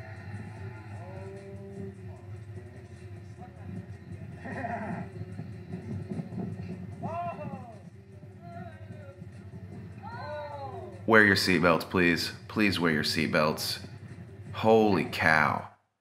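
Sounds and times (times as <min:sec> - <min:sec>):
steady low rumble: 0:00.0 - 0:15.7
people shouting and crying out: 0:07.0 - 0:07.8, 0:10.0 - 0:11.3.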